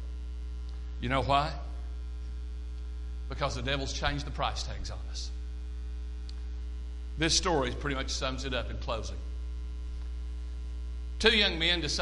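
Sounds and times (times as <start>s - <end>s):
electrical mains hum: 0.0s - 12.0s
faint tick: 6.2s - 6.4s.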